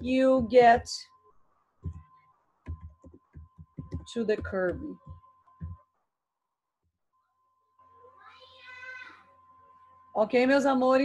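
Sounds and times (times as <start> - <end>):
high-pitched meow-like call: 8.0 - 9.3.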